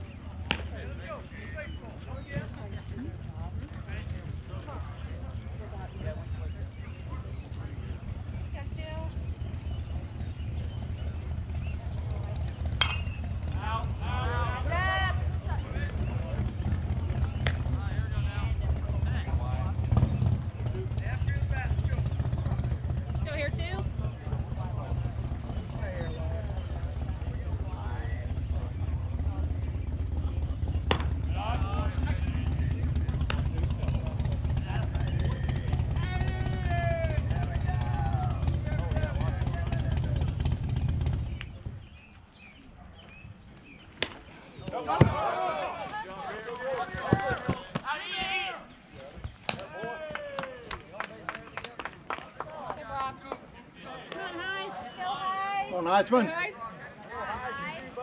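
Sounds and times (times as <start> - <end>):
voices shouting: 12.3 - 16.5, 33.9 - 40.2, 44.0 - 51.1, 52.5 - 58.0.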